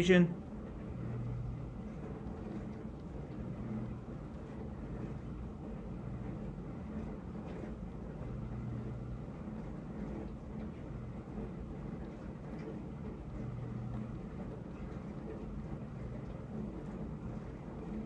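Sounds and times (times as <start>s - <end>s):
steady low hum: 0.0s - 18.0s.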